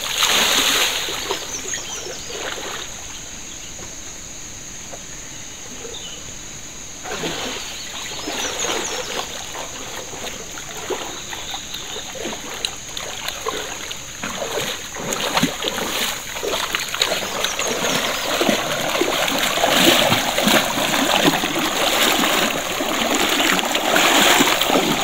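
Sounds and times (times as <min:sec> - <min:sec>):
water poured and splashing: 0:00.0 - 0:01.6, 0:07.0 - 0:25.0
water sloshing: 0:00.0 - 0:03.2, 0:07.0 - 0:25.0.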